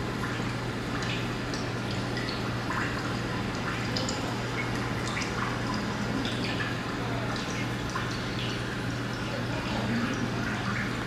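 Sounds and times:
water dripping: 0.0 - 11.0.

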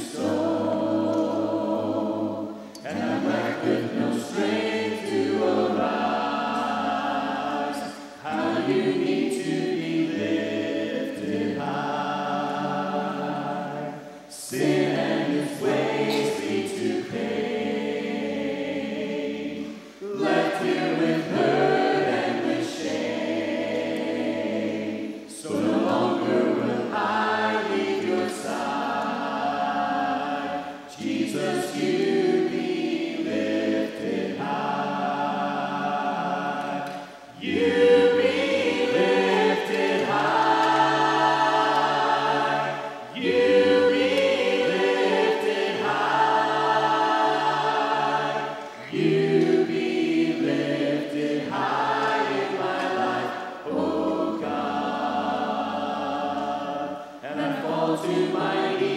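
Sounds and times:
choir singing a hymn a cappella: 0.0 - 58.9.

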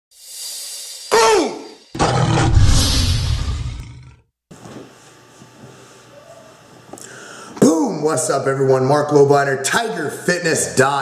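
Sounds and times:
rising whoosh: 1.9 - 4.1
tiger roaring: 2.0 - 4.2
tiger snarl: 2.0 - 4.2.

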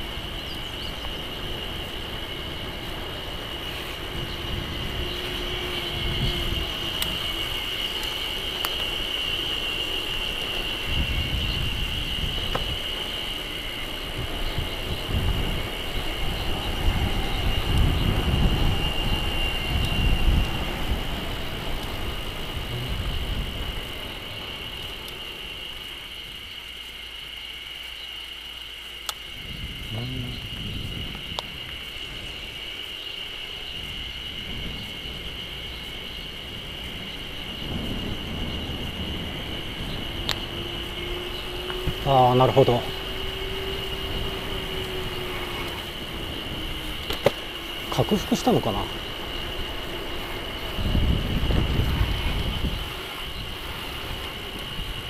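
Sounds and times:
wind buffeting microphone: 0.0 - 26.6, 29.2 - 55.0.

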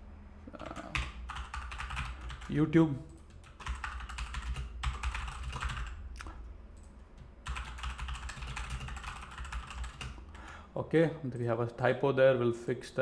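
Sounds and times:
rapid typing on keyboard: 0.6 - 6.0, 6.8 - 10.6.

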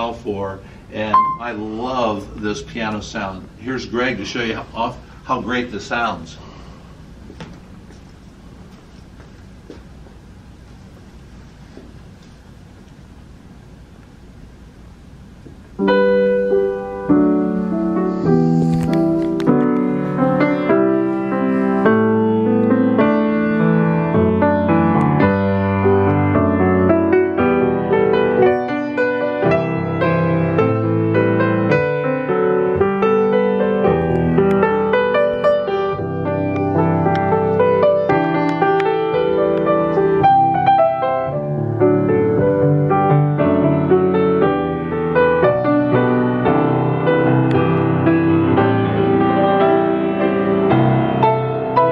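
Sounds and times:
grand piano playing chords: 0.0 - 8.7, 12.0 - 51.9.

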